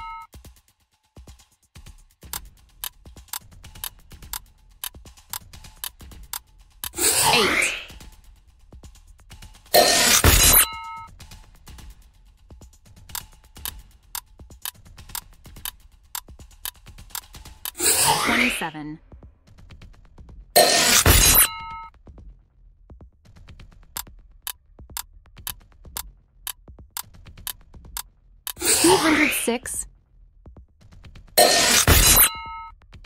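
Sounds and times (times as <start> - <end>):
clock-like ticks: 0.0 - 0.3, 2.2 - 7.2, 13.1 - 18.0, 24.0 - 29.8.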